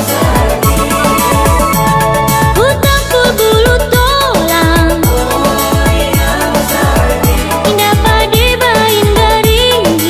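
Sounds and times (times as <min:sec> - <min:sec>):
sliding held melody line: 0:00.4 - 0:03.3.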